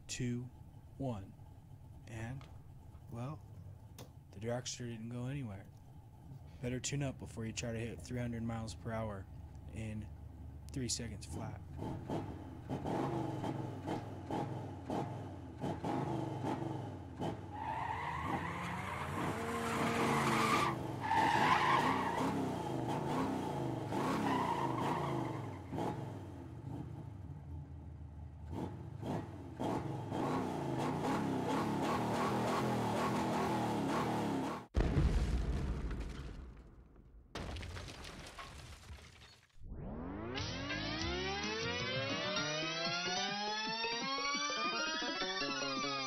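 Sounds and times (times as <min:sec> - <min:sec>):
race car engine revving: 0:11.2 - 0:34.7
tyre screech: 0:17.5 - 0:22.4
loud low crash: 0:34.8 - 0:39.2.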